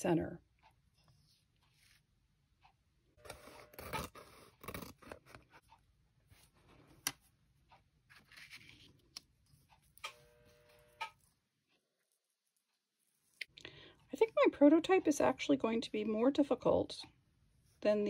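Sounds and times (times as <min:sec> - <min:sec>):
paper sheets rustling: 0:08.1 - 0:09.0.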